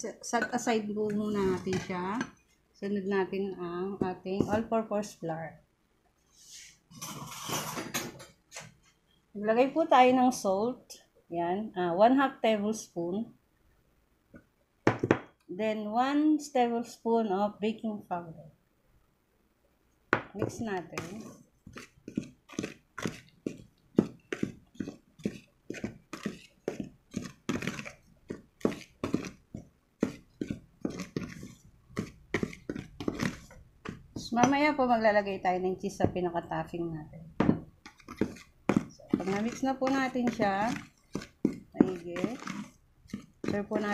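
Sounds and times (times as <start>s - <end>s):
utensil scraping a bowl: 6.5s - 7.9s, 20.4s - 34.6s, 37.8s - 43.9s.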